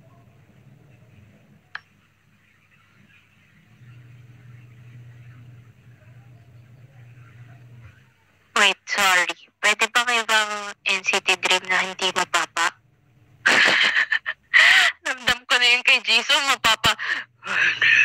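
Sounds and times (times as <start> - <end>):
low steady hum: 0.0 - 18.0
loud high person's voice: 8.6 - 12.7, 15.0 - 17.2.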